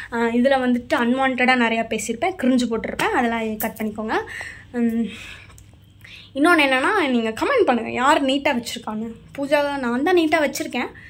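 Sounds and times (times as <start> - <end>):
woman speaking: 0.0 - 5.3, 6.3 - 11.0.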